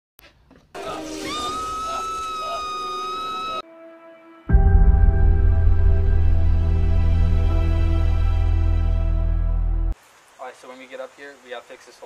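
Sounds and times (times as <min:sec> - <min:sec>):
person screaming: 0:01.1 - 0:03.6.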